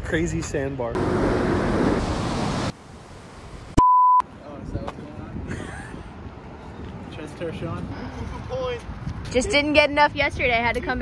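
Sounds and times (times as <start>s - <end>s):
high-pitched censor bleep: 3.8s - 4.2s.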